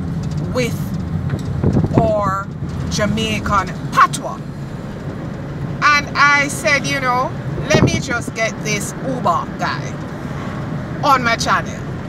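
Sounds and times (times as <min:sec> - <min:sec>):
car engine and tyres rumbling: 0:00.0 - 0:12.0
woman's voice: 0:00.4 - 0:00.9, 0:02.0 - 0:04.4, 0:05.8 - 0:10.0, 0:11.0 - 0:11.9.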